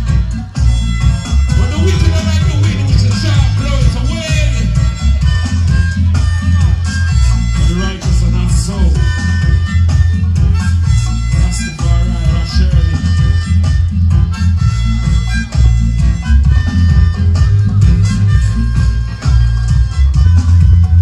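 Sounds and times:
reggae over a sound system: 0.0 - 21.0.

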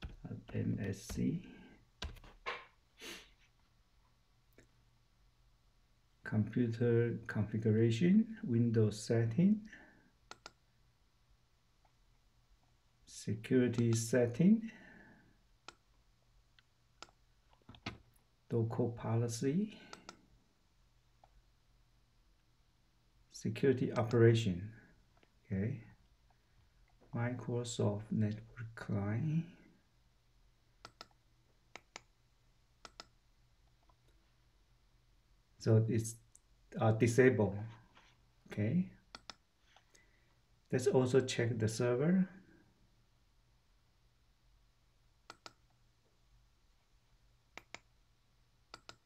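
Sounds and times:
computer mouse double-clicks: 48.7 - 49.0.

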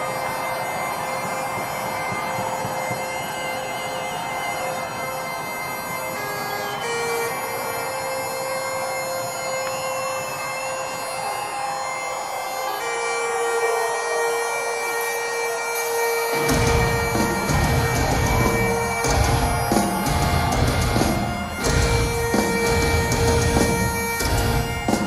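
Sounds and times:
bagpipes playing: 0.0 - 25.0
heavy drums and bass: 16.5 - 25.0.

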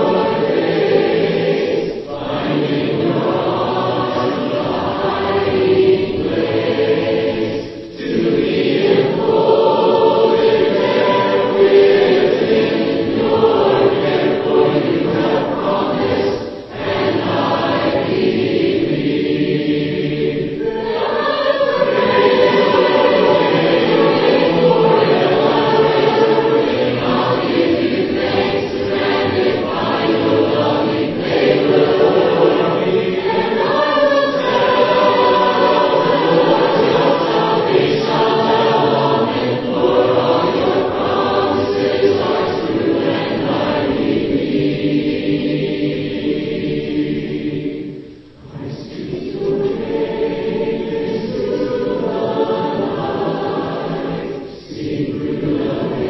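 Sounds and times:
choir singing a hymn unaccompanied: 0.0 - 56.0.

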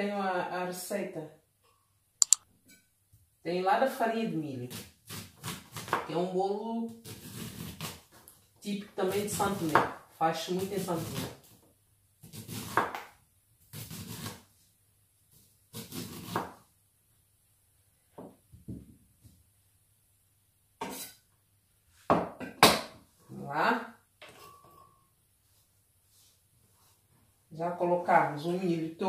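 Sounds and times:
knife scraping corn kernels: 4.7 - 6.0, 6.9 - 8.2, 12.2 - 13.1, 13.7 - 14.5, 15.3 - 16.6, 20.8 - 21.2.

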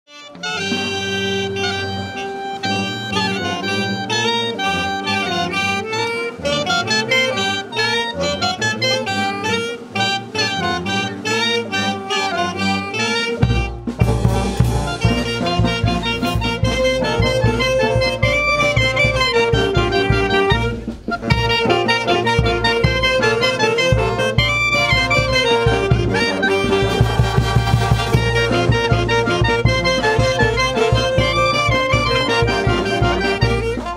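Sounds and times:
saxophones and clarinets playing: 0.1 - 33.9
heavy drum and bass beat: 13.4 - 33.9.

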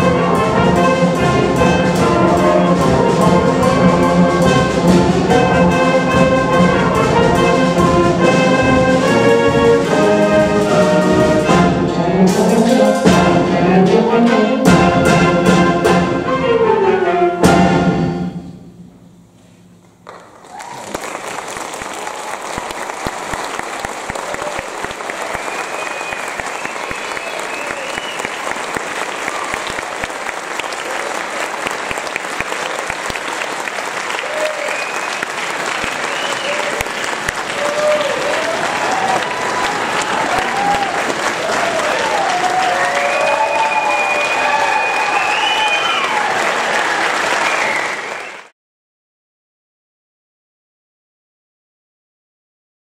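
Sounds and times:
audience applauding: 20.1 - 48.5
people cheering: 20.1 - 48.5.

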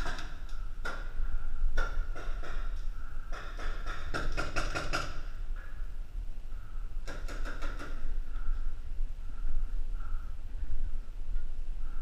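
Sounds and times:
paintball markers firing: 1.8 - 5.3, 7.0 - 8.0.

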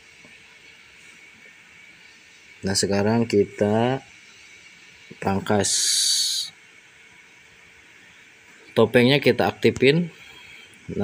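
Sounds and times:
faint background hiss: 0.0 - 11.0
man's drawn-out s hiss: 2.0 - 6.8, 8.0 - 11.0.

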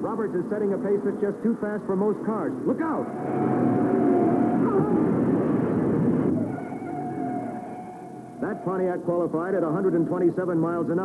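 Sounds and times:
stock cars roaring: 2.1 - 10.3.

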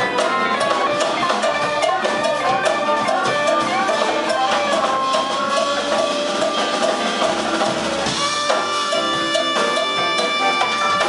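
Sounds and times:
live jazz band playing: 0.0 - 11.0.

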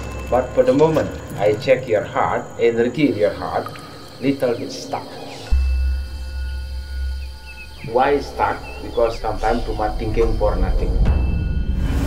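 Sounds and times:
faint chirps: 0.0 - 12.0
insect trill: 0.0 - 12.0
low bass drone: 0.0 - 12.0.

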